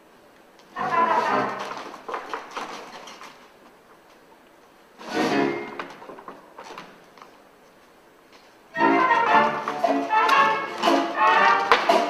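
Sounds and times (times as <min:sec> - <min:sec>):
orchestra with brass playing: 0:00.8 - 0:01.8, 0:05.0 - 0:05.8, 0:08.7 - 0:12.0.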